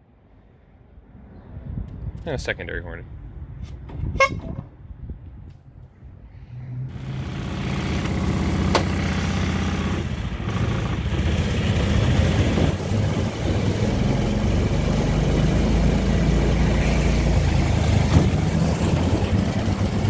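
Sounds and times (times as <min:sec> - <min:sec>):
road and wind noise: 0:00.0 - 0:20.0
small car engine running: 0:06.9 - 0:20.0.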